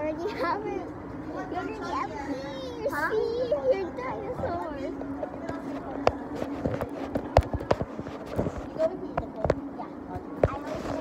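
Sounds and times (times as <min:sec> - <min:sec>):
low hum of room noise: 0:00.0 - 0:11.0
sharp knocks and clicks: 0:05.3 - 0:09.7.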